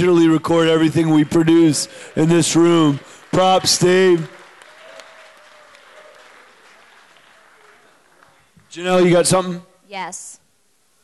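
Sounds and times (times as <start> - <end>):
light audience applause: 0.1 - 9.1.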